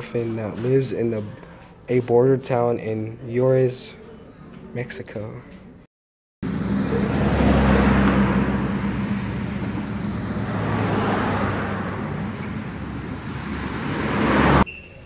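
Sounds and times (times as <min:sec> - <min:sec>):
traffic rumble: 0:06.4 - 0:14.7.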